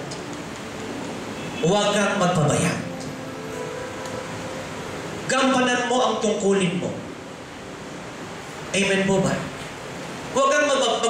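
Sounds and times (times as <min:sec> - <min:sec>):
faint hum: 0:00.0 - 0:11.0
low room hiss: 0:00.0 - 0:11.0.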